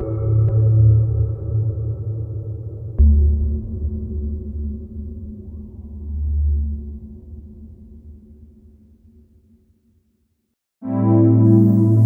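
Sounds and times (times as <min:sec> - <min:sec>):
synthesizer low sustained note: 0:10.8 - 0:12.0.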